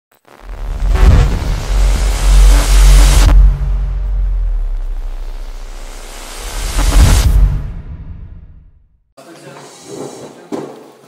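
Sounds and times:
loud noisy whoosh: 0:00.3 - 0:08.9
deep bass rumble: 0:00.4 - 0:09.0.

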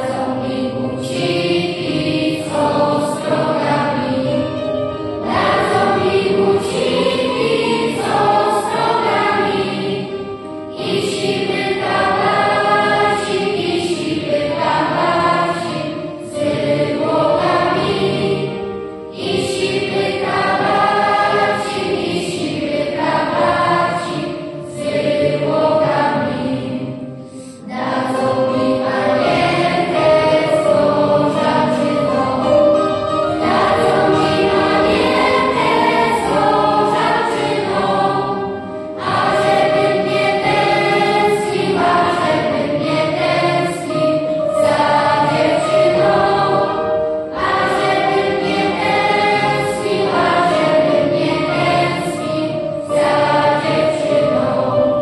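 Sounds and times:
children's choir singing: 0:00.0 - 0:55.0
keyboard accompaniment: 0:00.0 - 0:55.0.

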